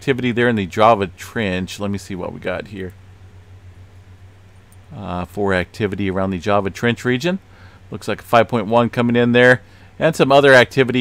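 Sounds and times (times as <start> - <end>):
steady low hum: 0.0 - 11.0
faint hiss: 6.7 - 8.3.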